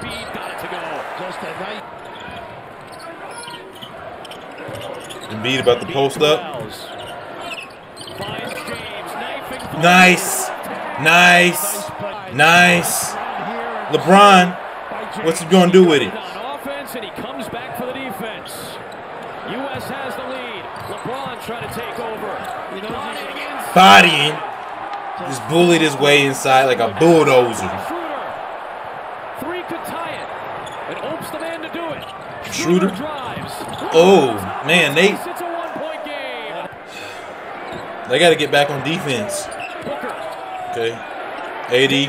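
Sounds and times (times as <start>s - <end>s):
arena background noise: 0.0s - 42.0s
man's voice: 9.6s - 14.6s, 15.2s - 18.2s, 23.5s - 24.4s, 25.2s - 27.9s, 32.5s - 37.2s.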